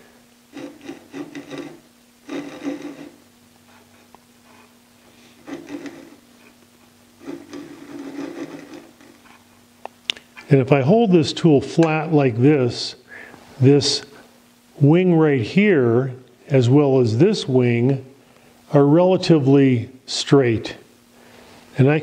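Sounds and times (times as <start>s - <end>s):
faint steady hum: 0.0s - 22.0s
gouge scraping wood: 0.5s - 6.5s, 7.2s - 9.5s.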